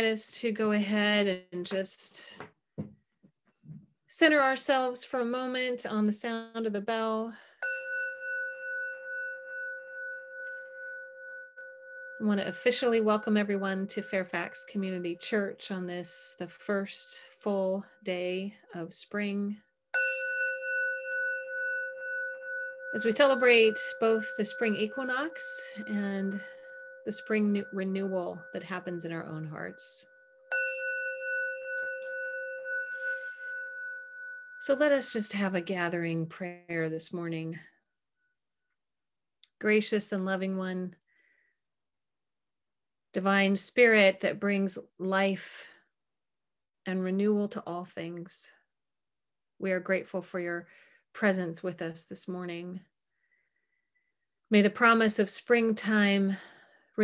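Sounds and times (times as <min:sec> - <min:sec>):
metal singing bowl ringing: 0:07.5 - 0:18.1, 0:20.0 - 0:36.3.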